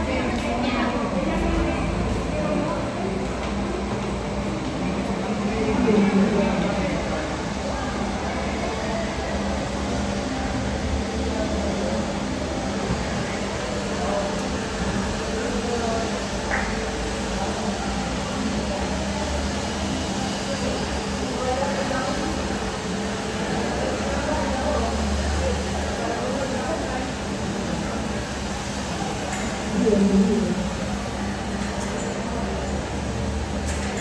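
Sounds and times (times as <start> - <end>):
jet airliner taxiing: 0.0 - 34.0.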